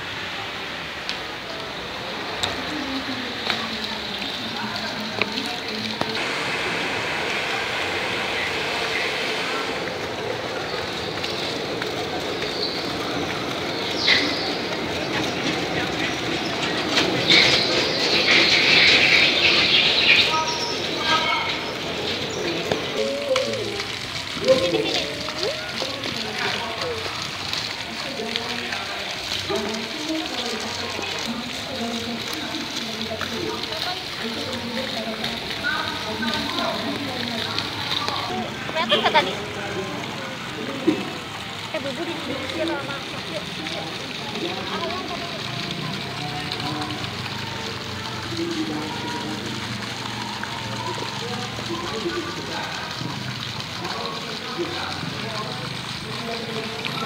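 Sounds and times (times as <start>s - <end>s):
indistinct voices: 0.0s - 57.0s
loud rushing noise: 6.2s - 11.8s.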